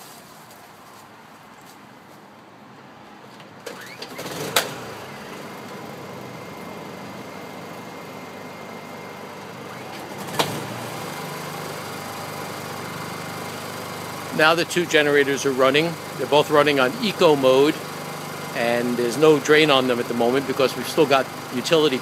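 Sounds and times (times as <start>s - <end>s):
generator recoil pull-start: 3.6s - 22.0s
generator engine idling: 3.8s - 22.0s.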